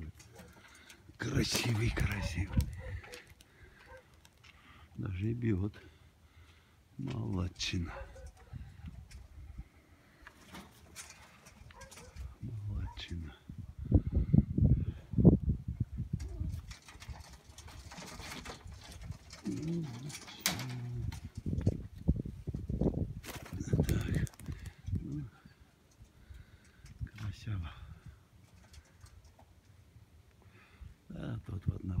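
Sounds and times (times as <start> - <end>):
pigeons cooing: 0.0 - 4.3, 7.8 - 9.7, 16.1 - 21.6
faint rustling: 0.0 - 13.2.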